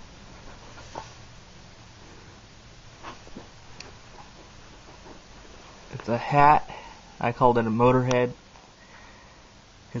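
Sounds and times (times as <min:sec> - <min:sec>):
soft clicks and rustles: 0:03.0 - 0:06.2.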